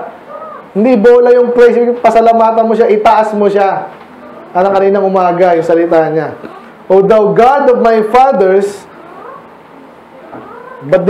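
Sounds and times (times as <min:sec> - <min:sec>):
faint animal calls: 0:00.0 - 0:00.8, 0:08.8 - 0:11.0
person speaking: 0:00.0 - 0:09.5, 0:10.2 - 0:11.0.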